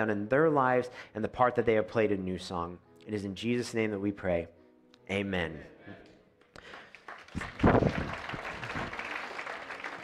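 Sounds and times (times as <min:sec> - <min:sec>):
congregation applauding: 0:06.5 - 0:10.0.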